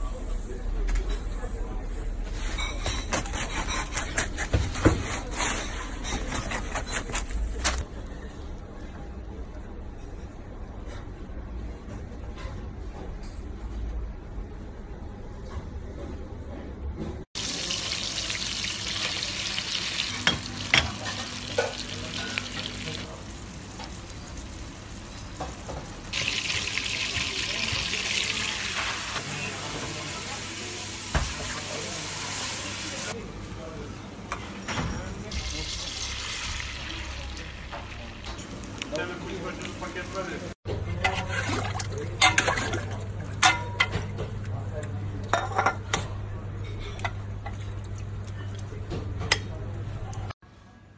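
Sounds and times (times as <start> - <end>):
butter sizzling in a pan: 17.4 - 33.1.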